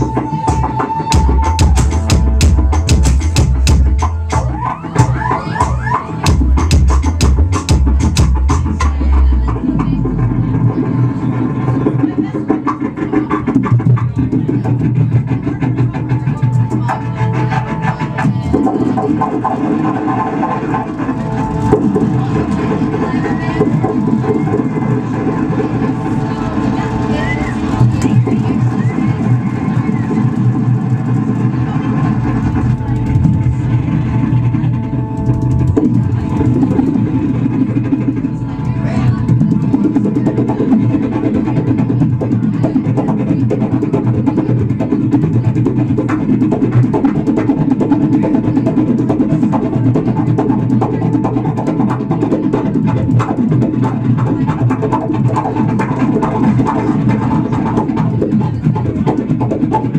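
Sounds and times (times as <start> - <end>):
sharp percussive hits: 0.0 - 17.1, 17.7 - 59.9
deep bass: 0.0 - 59.9
homemade string instrument and saw music: 0.0 - 59.9.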